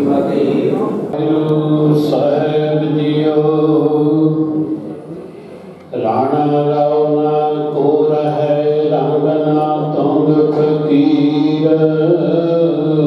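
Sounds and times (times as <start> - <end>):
man chanting scripture: 0.0 - 13.0.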